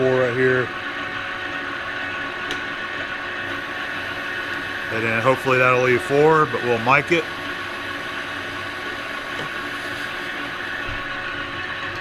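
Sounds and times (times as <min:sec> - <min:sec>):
lathe humming and whining: 0:00.0 - 0:12.0.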